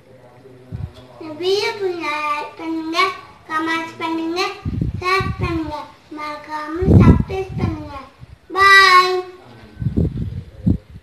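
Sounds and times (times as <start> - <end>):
child singing high held note: 5.0 - 9.4.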